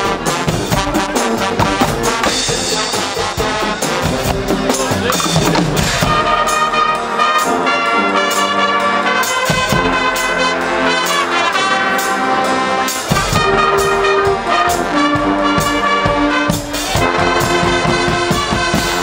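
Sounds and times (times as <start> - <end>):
deep bass: 0.0 - 7.3
brass band playing: 0.0 - 19.0
drum kit: 0.0 - 19.0.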